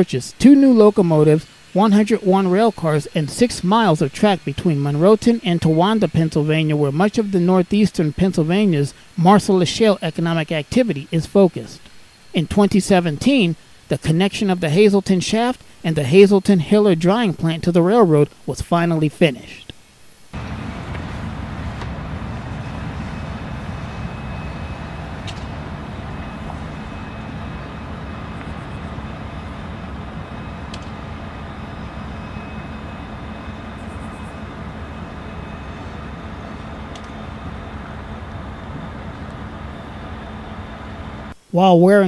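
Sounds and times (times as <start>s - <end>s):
low hum: 20.3s - 41.4s
train rumble: 20.4s - 41.4s.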